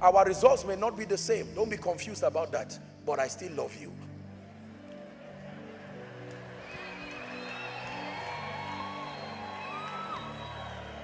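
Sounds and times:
soft music of held chords: 0.0 - 11.0
congregation cheering and calling out: 4.6 - 11.0.

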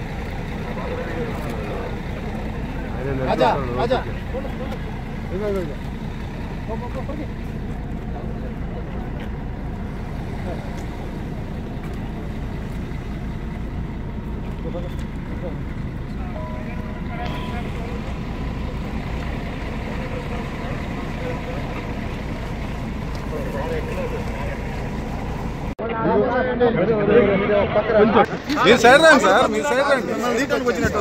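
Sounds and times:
low mechanical rumble: 0.0 - 25.8
faint voices: 0.0 - 31.0.

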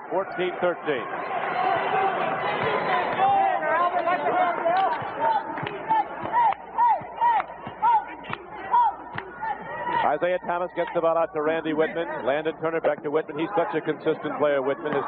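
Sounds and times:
arena crowd murmuring and cheering: 0.0 - 15.0.

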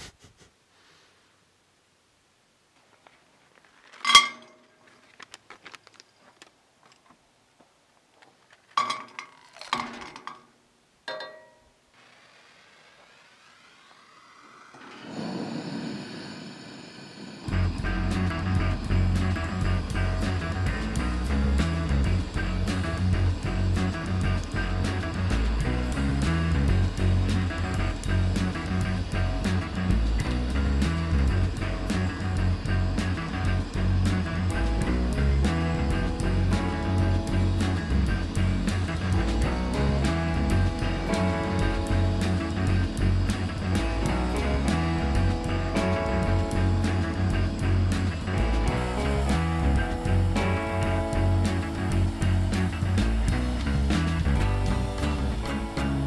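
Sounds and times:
metal clinking against skillet: 4.1 - 4.6, 11.1 - 11.7
gas burner hissing: 11.9 - 56.0
rock music with guitar and drums: 17.5 - 56.0.

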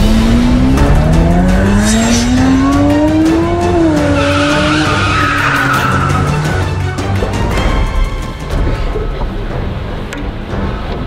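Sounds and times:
car engine revving: 0.0 - 7.6
background music: 0.0 - 11.0
tyres squealing: 3.5 - 7.0.

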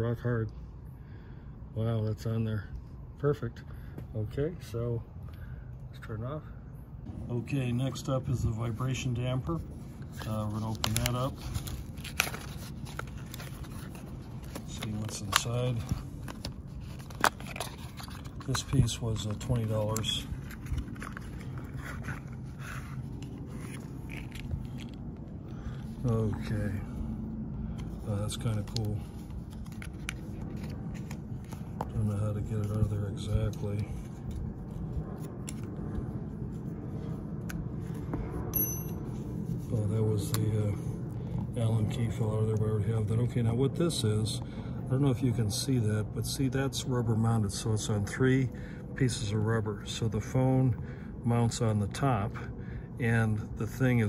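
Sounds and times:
low background rumble: 0.0 - 54.0
cardboard rustling: 9.9 - 25.0.

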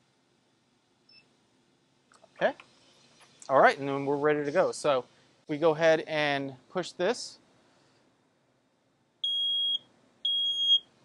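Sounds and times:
smoke alarm beeps: 9.2 - 10.9.

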